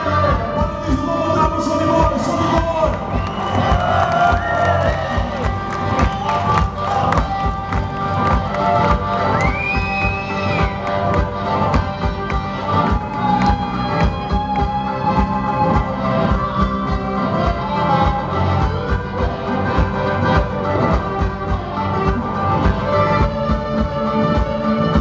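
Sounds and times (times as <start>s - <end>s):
harmonica: 0.0s - 25.0s
live blues band: 0.0s - 25.0s
crowd cheering and shouting: 1.0s - 11.2s.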